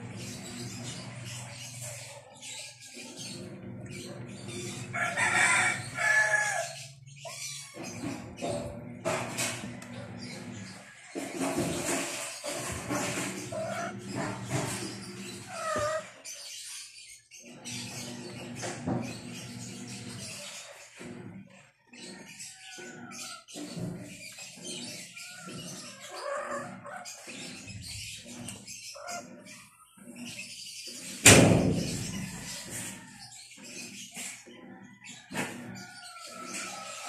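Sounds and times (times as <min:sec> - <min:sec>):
pet animals crying: 0:00.0 - 0:08.9, 0:13.4 - 0:18.4, 0:19.2 - 0:31.1.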